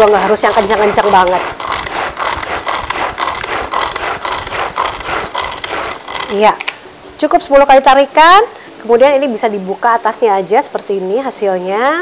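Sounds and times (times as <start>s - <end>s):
pull-cord chopper whirring: 0.0s - 6.6s.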